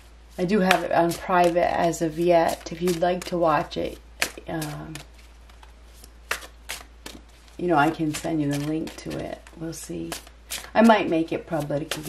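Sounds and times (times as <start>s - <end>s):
cards being shuffled: 0.4s - 10.8s, 11.4s - 12.0s.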